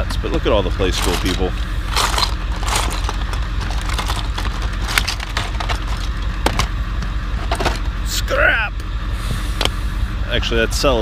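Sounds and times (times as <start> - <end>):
steady low hum: 0.0 - 11.0
plastic toy pieces clattering: 0.9 - 6.7.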